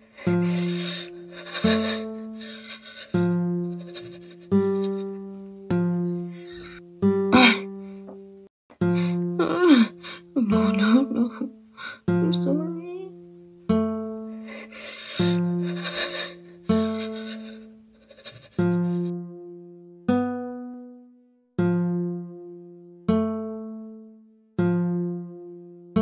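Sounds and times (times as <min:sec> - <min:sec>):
person crying and wailing: 0:00.4 - 0:05.3, 0:07.3 - 0:07.8, 0:09.4 - 0:12.0, 0:14.6 - 0:19.1
plucked guitar chords: 0:04.4 - 0:14.4, 0:18.7 - 0:26.0.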